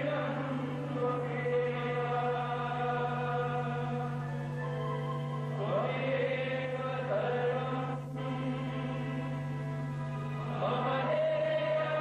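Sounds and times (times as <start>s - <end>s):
devotional chanting: 0.0s - 12.0s
steady held drone: 0.0s - 12.0s.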